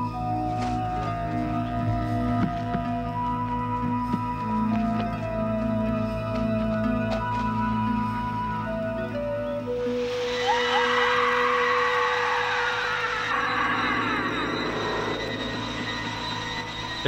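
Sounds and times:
organ-like synthesizer tones: 0.0s - 17.0s
shrill warbling synth layer: 9.8s - 17.0s.

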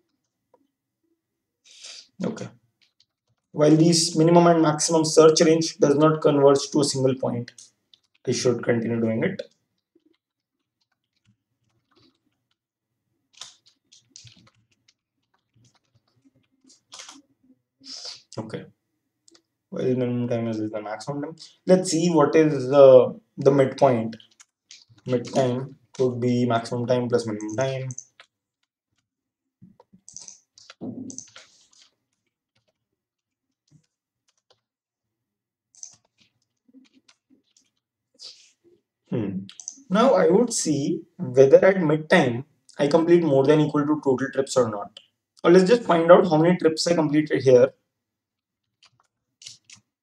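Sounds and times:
computer keyboard typing: 7.0s - 12.6s, 13.3s - 17.2s, 23.6s - 29.0s, 29.8s - 34.7s, 35.7s - 37.8s, 39.5s - 39.9s, 48.6s - 49.8s.

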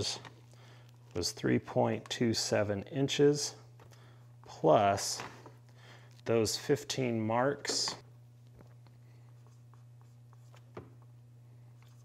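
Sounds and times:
steady low hum: 0.0s - 12.0s
marker writing on whiteboard: 9.4s - 11.1s.

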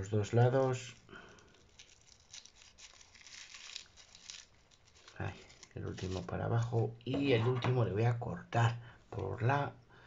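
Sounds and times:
tissue paper rustling and crinkling: 1.4s - 6.8s.

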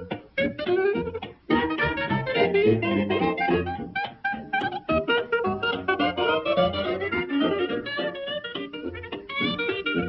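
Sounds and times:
lively instrumental music: 0.0s - 10.0s.

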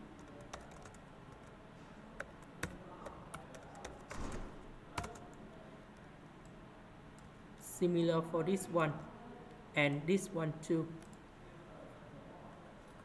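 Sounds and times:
typing on a computer keyboard: 0.0s - 1.6s, 2.2s - 5.4s.

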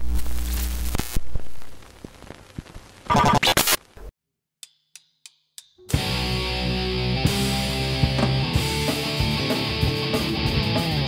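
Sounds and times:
short glitchy burst: 3.1s - 3.8s
drumstick clicks: 4.6s - 5.9s.

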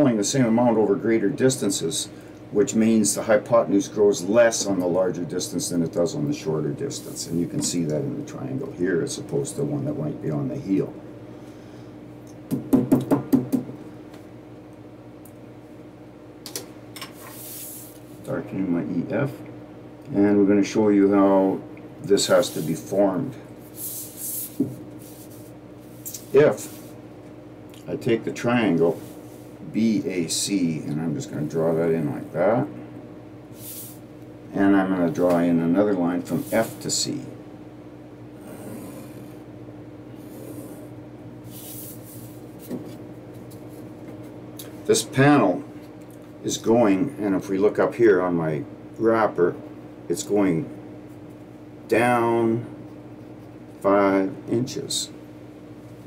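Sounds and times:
low room hum: 0.0s - 56.0s
plastic triangle knocking on board: 12.5s - 13.7s.

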